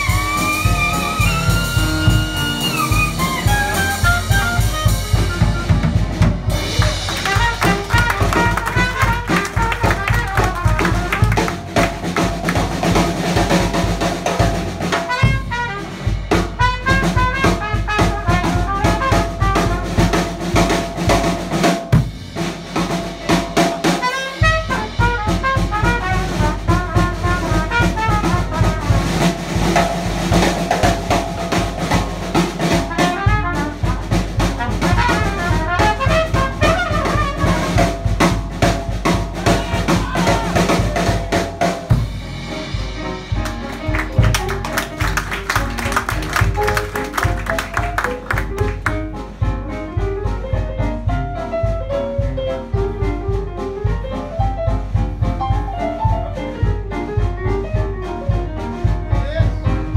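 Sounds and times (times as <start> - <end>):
jazz band playing: 0.0 - 59.9.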